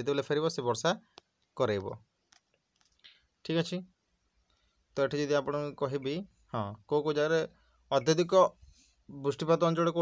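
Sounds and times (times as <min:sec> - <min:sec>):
man speaking: 0:00.0 - 0:02.1, 0:03.4 - 0:04.0, 0:04.9 - 0:10.0.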